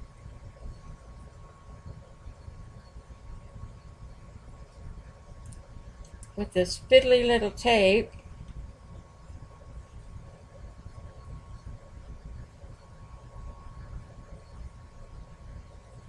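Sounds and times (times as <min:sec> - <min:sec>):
faint high whine: 0:00.0 - 0:16.0.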